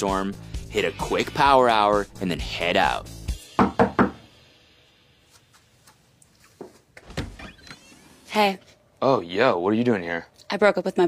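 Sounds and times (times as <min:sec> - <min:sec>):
background music: 0:00.0 - 0:05.9
knocks on a door: 0:03.6 - 0:04.3.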